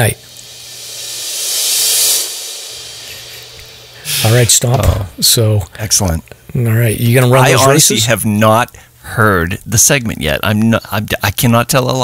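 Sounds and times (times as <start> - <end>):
hissing cymbal-like swell: 0.0 - 6.0.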